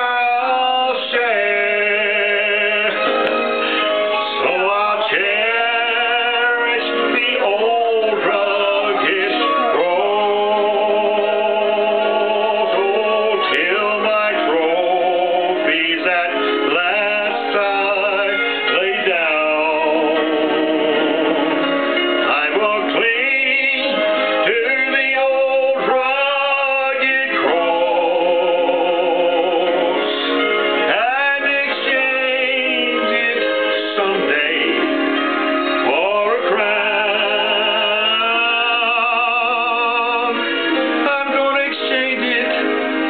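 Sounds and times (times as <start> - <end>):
man singing a hymn: 0.0 - 43.0.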